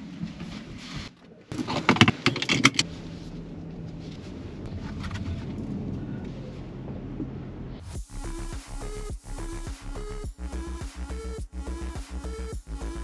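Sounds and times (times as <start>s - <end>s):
sharp clicks and rattles: 1.5s - 2.8s
car low rumble: 1.5s - 13.0s.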